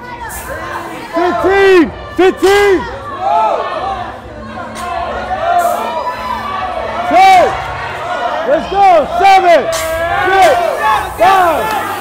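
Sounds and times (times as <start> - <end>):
hubbub of crowded gym: 0.0 - 12.0
spectators shouting encouragement: 0.1 - 12.0.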